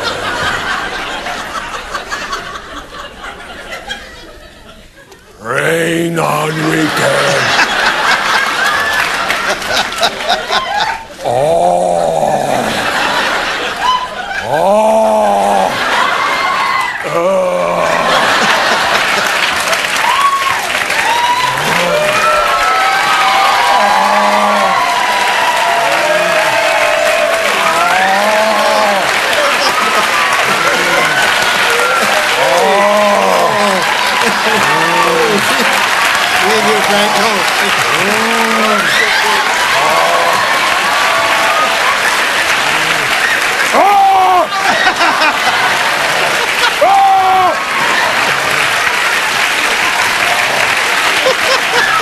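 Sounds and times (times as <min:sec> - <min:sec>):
audience laughing: 0:00.0 - 0:20.3, 0:21.2 - 0:22.7, 0:23.3 - 0:52.0
man crying out: 0:05.4 - 0:07.6, 0:11.2 - 0:12.8, 0:14.4 - 0:15.8, 0:17.0 - 0:18.5, 0:21.4 - 0:22.3, 0:23.7 - 0:24.9, 0:27.7 - 0:29.1, 0:32.4 - 0:33.9, 0:43.7 - 0:44.5
audience applauding: 0:05.4 - 0:52.0.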